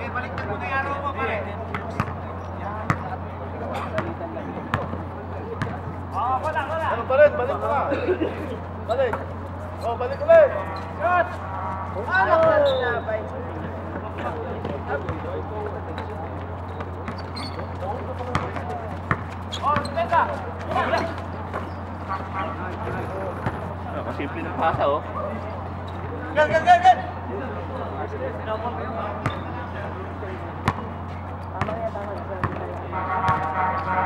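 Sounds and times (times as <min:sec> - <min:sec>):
basketball bouncing on court: 0:01.6 - 0:03.2, 0:03.9 - 0:06.0, 0:12.3 - 0:12.6, 0:16.0 - 0:21.8, 0:29.2 - 0:29.5, 0:30.6 - 0:33.5
players shouting: 0:08.4 - 0:28.0.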